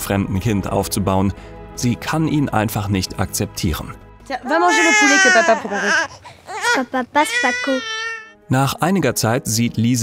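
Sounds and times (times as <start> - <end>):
newborn baby crying: 4.5 - 8.4.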